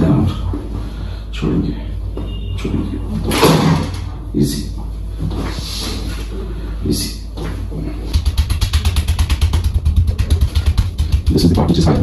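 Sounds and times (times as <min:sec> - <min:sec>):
low motor rumble: 0:07.8 - 0:12.0
percussion massager hammering: 0:08.1 - 0:12.0.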